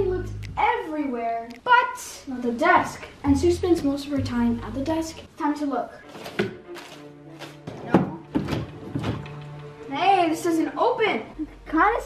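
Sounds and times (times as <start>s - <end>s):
desk drawers opening and shutting: 6.1s - 9.7s
drawer thunk: 7.4s - 9.4s.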